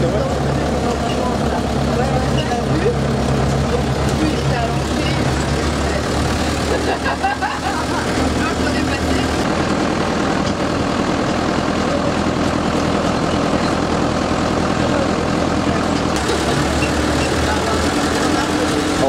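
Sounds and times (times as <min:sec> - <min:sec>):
road and wind noise: 0:00.0 - 0:19.0
truck engine running: 0:00.0 - 0:19.0.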